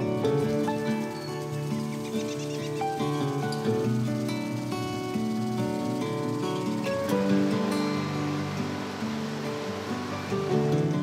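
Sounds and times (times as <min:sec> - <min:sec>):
background music with held notes: 0:00.0 - 0:11.0
soft wash of noise: 0:02.8 - 0:11.0.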